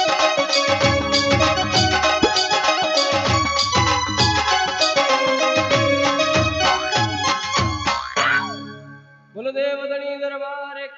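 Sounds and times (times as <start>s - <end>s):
harmonium and keyboard devotional music: 0.0s - 10.3s.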